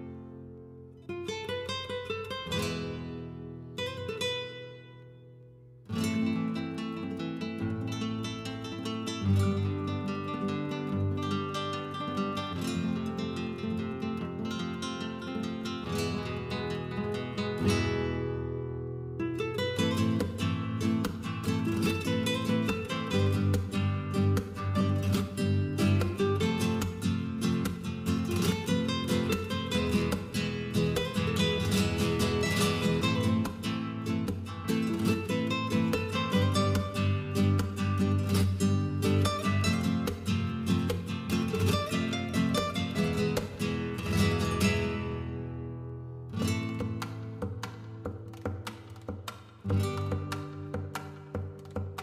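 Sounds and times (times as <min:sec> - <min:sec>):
acoustic guitar plucking and strumming: 0:00.0 - 0:52.0.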